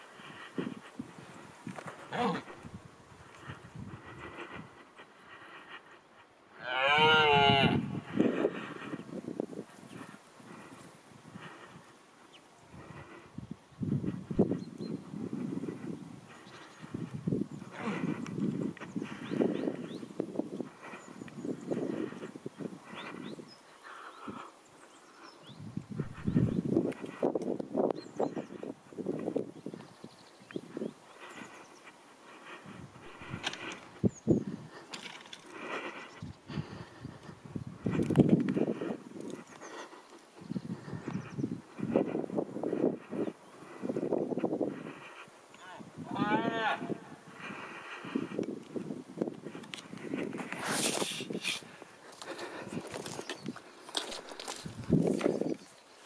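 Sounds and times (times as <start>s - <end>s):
deer stag roaring: 6.6s - 7.8s.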